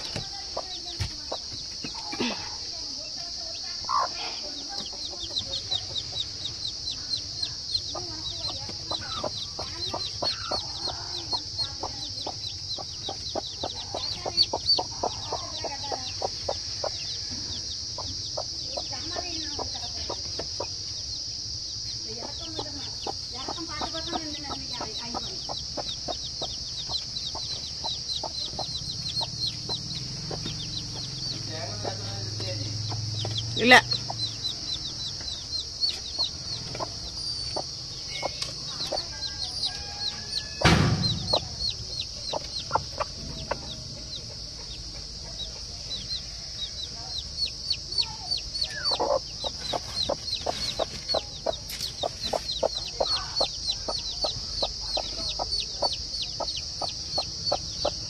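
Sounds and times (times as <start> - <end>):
hen clucking: 0.0 - 20.9, 21.5 - 58.0
chicks peeping: 0.0 - 58.0.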